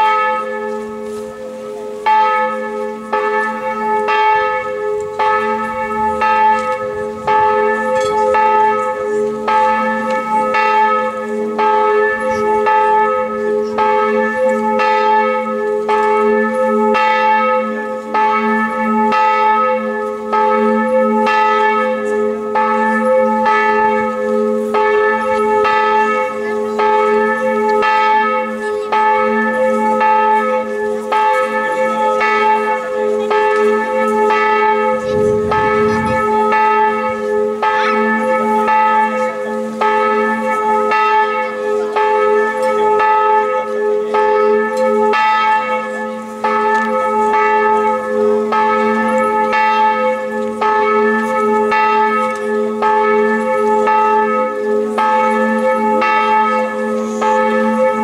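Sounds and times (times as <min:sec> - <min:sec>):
church bell ringing: 0:00.0 - 0:58.0.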